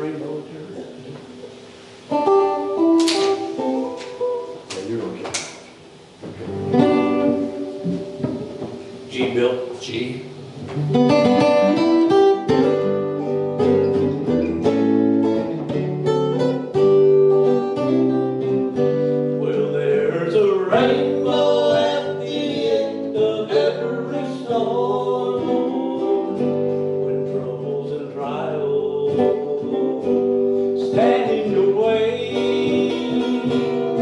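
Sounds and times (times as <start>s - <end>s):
acoustic and electric guitars: 0.0s - 34.0s.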